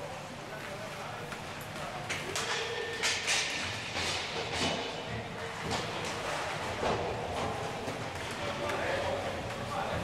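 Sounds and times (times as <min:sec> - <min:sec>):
hockey sticks and pucks clacking: 0:00.6 - 0:10.0
players' voices: 0:07.7 - 0:10.0.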